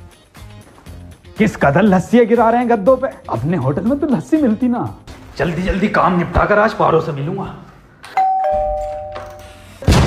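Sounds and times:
two-note doorbell chime: 8.2s - 9.8s.

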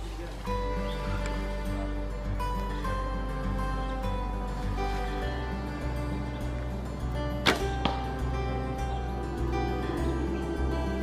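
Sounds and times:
background music: 0.0s - 11.0s
bowstring thwack: 7.4s - 8.2s.

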